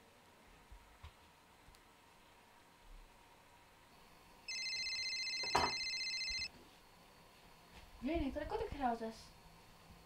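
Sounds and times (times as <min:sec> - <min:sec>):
phone trilling ring: 0:04.5 - 0:06.5.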